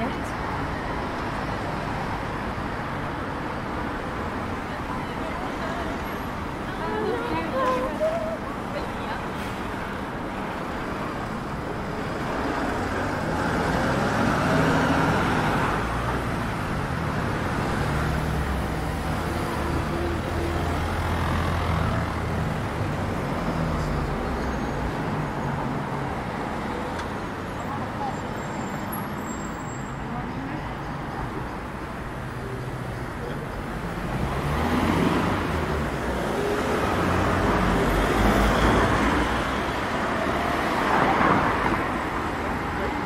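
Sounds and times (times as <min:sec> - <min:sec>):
cars passing on wet street: 0:00.0 - 0:43.0.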